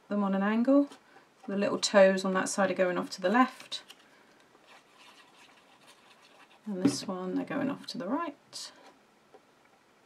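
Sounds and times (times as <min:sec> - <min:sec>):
faint rubbing and handling: 0:03.4 - 0:07.1.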